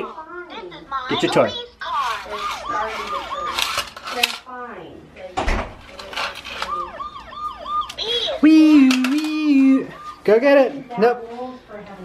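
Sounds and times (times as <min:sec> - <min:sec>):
toy police siren wailing: 0:01.9 - 0:04.0, 0:06.3 - 0:10.4
plastic toy clattering on tile: 0:02.0 - 0:04.5, 0:05.9 - 0:06.8, 0:08.8 - 0:09.4.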